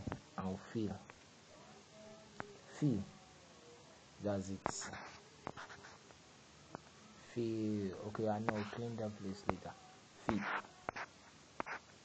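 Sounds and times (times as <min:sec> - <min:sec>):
fingertip tapping touchscreen: 0:10.3 - 0:11.8.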